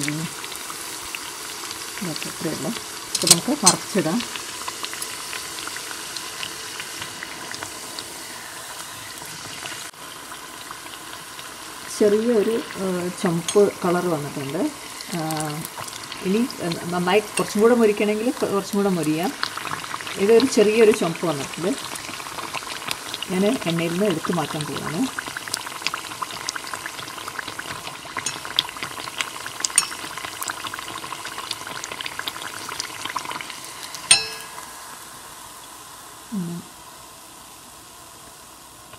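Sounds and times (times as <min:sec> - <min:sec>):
flatbread deep-frying in oil: 0:00.0 - 0:38.9.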